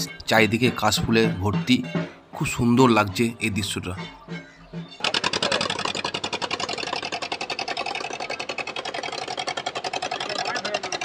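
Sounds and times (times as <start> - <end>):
motor boat engine chugging: 0.0 - 11.0.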